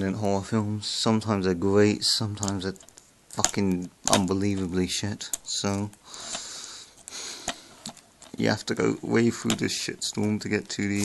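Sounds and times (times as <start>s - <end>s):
person sniffing: 6.1s - 7.8s
plastic case clicks: 9.4s - 9.7s.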